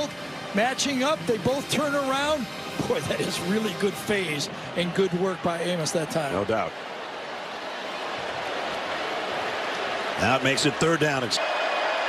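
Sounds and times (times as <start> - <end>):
large stadium crowd noise: 0.0 - 12.0.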